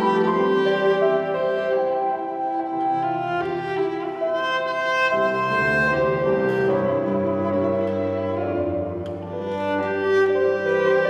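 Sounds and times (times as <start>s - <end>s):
cello bowing long notes: 0.0s - 11.0s
grand piano: 0.0s - 11.0s.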